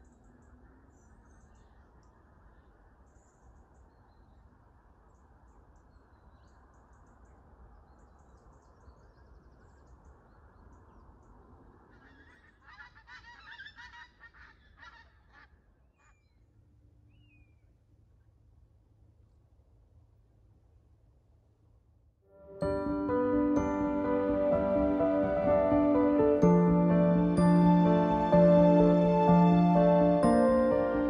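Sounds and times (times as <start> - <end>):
faint outdoor background: 0.0 - 31.0.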